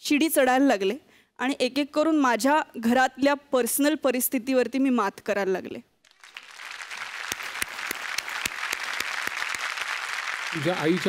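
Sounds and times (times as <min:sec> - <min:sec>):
audience applauding: 0:06.1 - 0:11.0.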